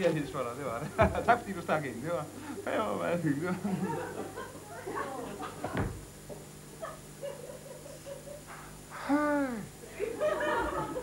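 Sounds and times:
faint hum: 0.0 - 11.0
man's wordless vocal sounds: 9.0 - 9.8.

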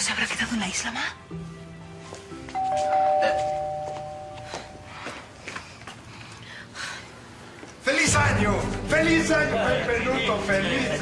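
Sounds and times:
two-note doorbell chime: 2.6 - 4.9.

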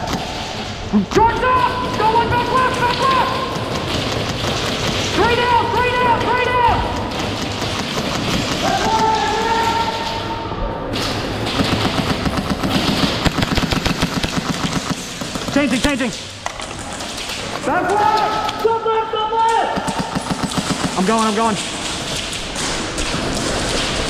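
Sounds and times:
airsoft guns firing: 0.0 - 10.2, 11.0 - 18.7, 19.6 - 24.0
players shouting: 1.0 - 3.9, 5.1 - 7.2, 8.5 - 10.5.

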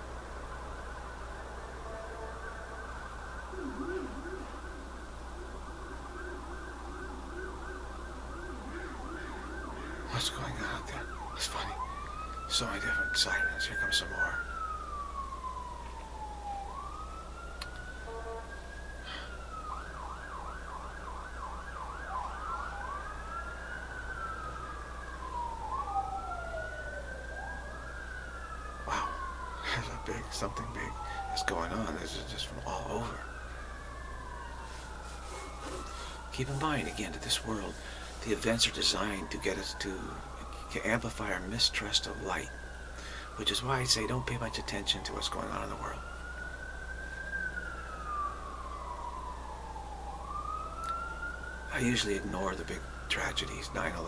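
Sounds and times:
emergency vehicle siren: 0.0 - 54.0.

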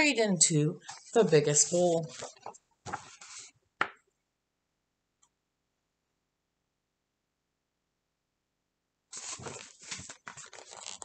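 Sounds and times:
paper pages rustling: 0.8 - 3.5, 9.1 - 11.0.

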